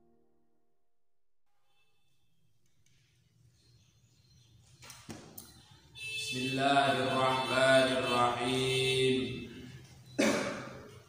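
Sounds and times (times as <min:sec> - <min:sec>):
man chanting in long notes: 0:06.3 - 0:09.7.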